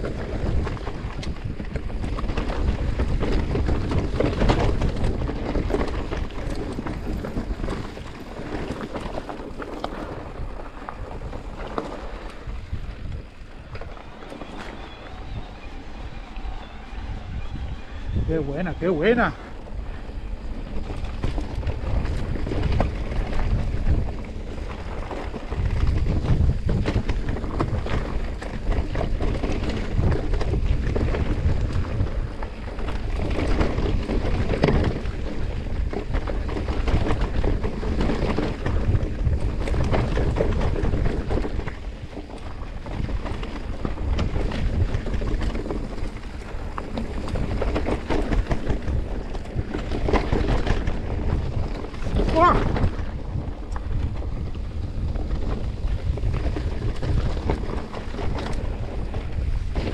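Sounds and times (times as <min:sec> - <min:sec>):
bike knocking and rattling: 0:00.0 - 0:59.9
bike tyre noise on dirt: 0:00.0 - 0:59.9
wind buffeting microphone: 0:00.0 - 0:59.9.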